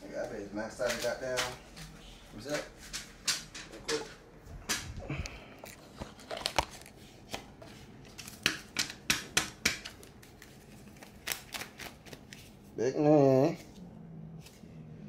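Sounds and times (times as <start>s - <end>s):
banknotes snapping and rustling: 0.8s - 1.9s, 2.5s - 12.6s.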